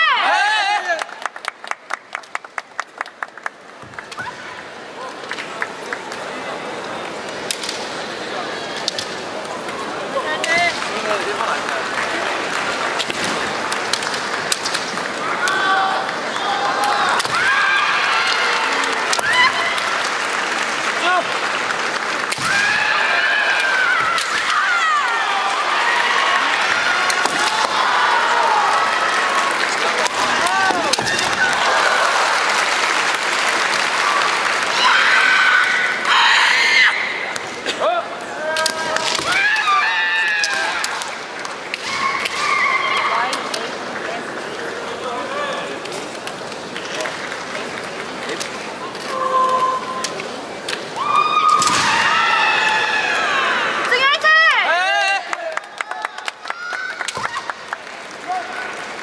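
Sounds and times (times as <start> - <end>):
hall crowd noise: 0.0 - 59.0
bamboo swords clashing: 23.5 - 25.2, 27.0 - 27.8
woman's high-pitched shout: 53.9 - 55.0.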